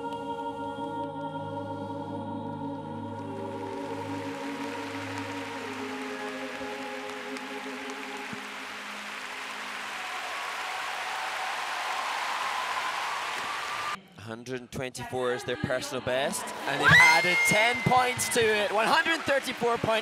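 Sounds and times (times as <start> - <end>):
arena crowd applause: 3.4 - 14.0, 16.5 - 20.0.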